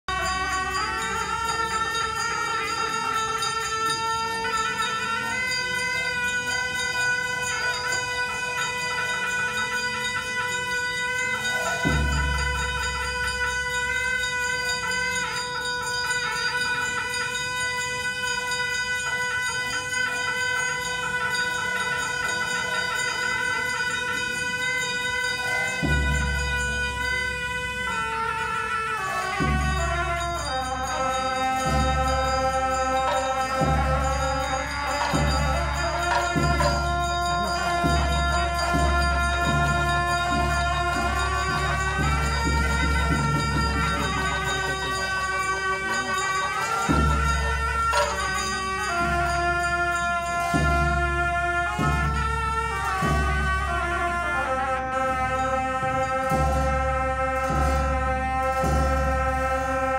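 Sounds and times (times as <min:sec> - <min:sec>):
long held instrumental tones: 0:00.0 - 0:59.9.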